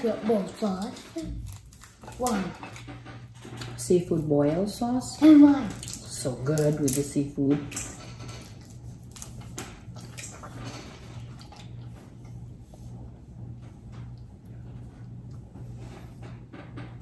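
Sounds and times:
steady low hum: 0:00.0 - 0:17.0
shells cracking and peeling: 0:01.2 - 0:03.7, 0:07.7 - 0:10.4.

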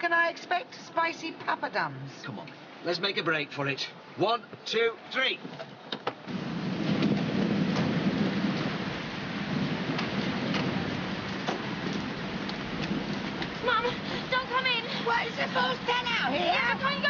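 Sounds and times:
heavy rain and wind: 0:00.0 - 0:17.0
voices: 0:13.6 - 0:17.0.

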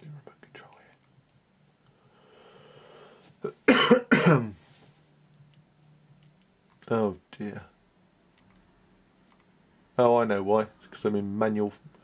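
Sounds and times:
long breathy sound: 0:01.9 - 0:03.3
man coughing: 0:03.6 - 0:04.6.

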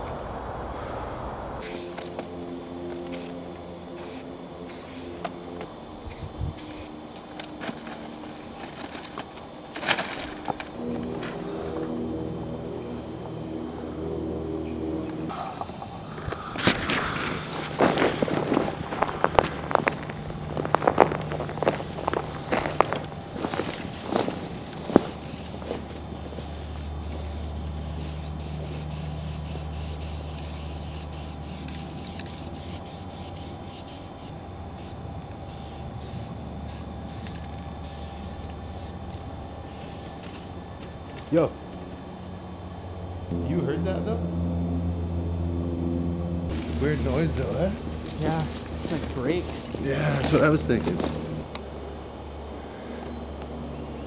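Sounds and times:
steady low hum: 0:00.0 - 0:54.0
footsteps on gravel: 0:07.2 - 0:12.0, 0:15.6 - 0:27.3, 0:46.5 - 0:51.4.

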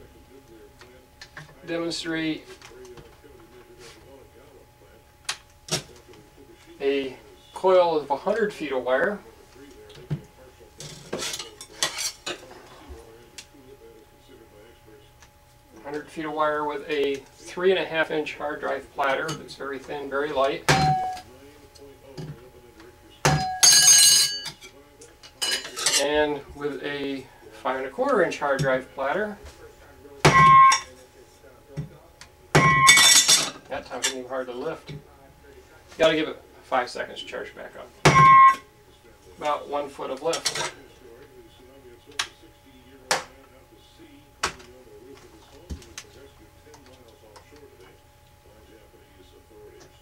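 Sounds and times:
metal platter ringing like a bell: 0:23.4 - 0:24.5.

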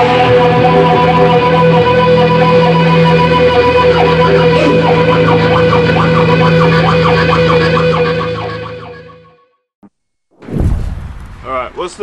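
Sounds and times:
electric guitar music: 0:00.0 - 0:09.2.

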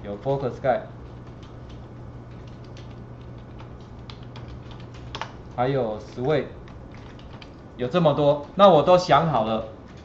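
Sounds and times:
steady low hum: 0:00.0 - 0:10.0
computer keyboard typing: 0:01.0 - 0:08.6.

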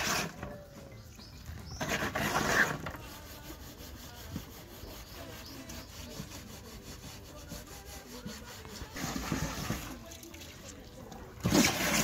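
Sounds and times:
grass scrubbing plastic can: 0:00.0 - 0:00.8, 0:01.6 - 0:12.0.

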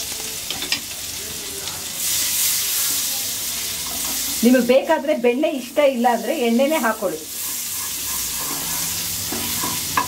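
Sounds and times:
butter sizzling in a pan: 0:00.0 - 0:10.0.

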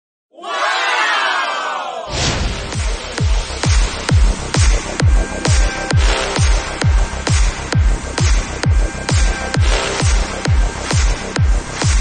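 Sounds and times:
crowd shouting and cheering: 0:00.3 - 0:04.7.

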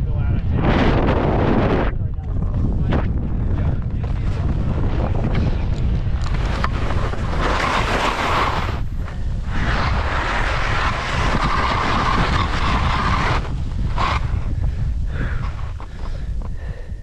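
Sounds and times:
wind buffeting microphone: 0:00.0 - 0:17.0
skis scraping through snow: 0:04.1 - 0:16.3.

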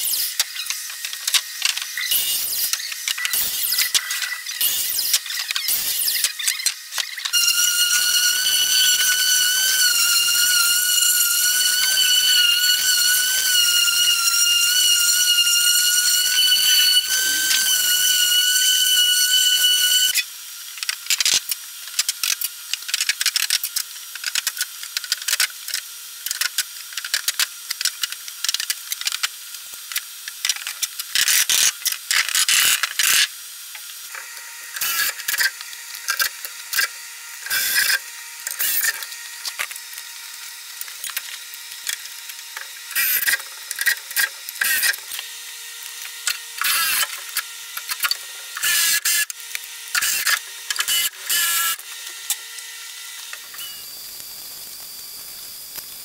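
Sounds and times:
machine high-pitched whine: 0:00.0 - 0:24.2, 0:28.8 - 0:56.0.

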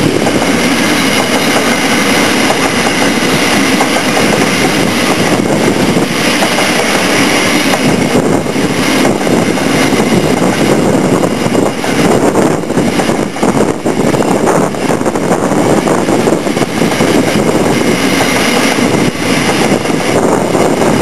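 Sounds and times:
train wheels clattering on rails: 0:00.0 - 0:21.0
wind buffeting microphone: 0:00.0 - 0:21.0.

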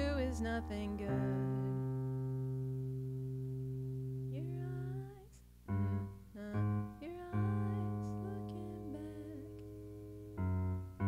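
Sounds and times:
person singing: 0:00.0 - 0:01.8, 0:04.3 - 0:09.6
electric keyboard sustained chord: 0:00.0 - 0:05.0, 0:05.7 - 0:11.0.

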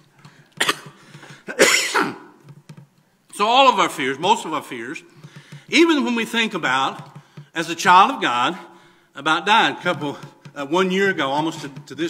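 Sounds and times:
man coughing: 0:00.6 - 0:02.4.

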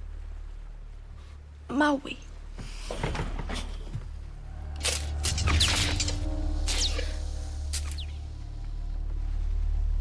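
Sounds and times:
deep sustained drone: 0:04.2 - 0:10.0.

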